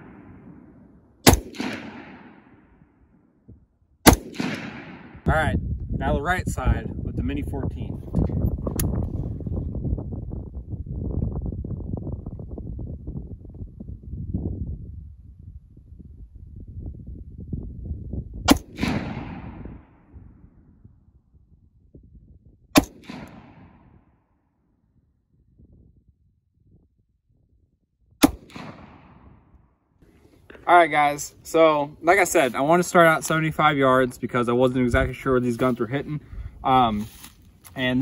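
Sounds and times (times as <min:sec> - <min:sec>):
rifle shots with echo: 0:00.0 - 0:03.1, 0:04.0 - 0:05.3, 0:18.5 - 0:20.3, 0:22.8 - 0:24.1, 0:28.2 - 0:29.5.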